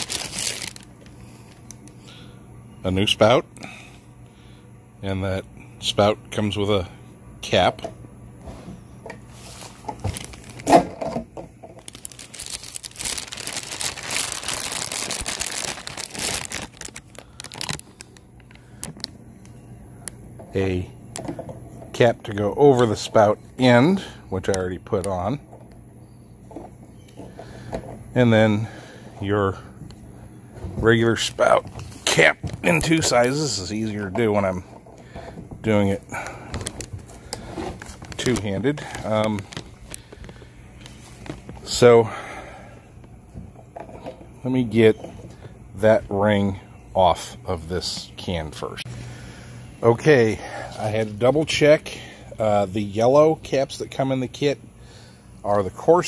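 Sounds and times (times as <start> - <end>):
rustling handling noise: 0.0 - 2.0, 8.4 - 23.5, 29.2 - 42.0.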